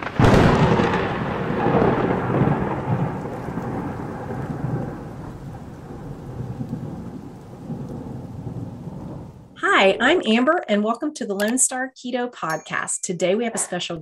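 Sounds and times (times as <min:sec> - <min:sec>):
thunder rumble: 0:00.0 - 0:10.2
rain-like hiss: 0:01.6 - 0:09.6.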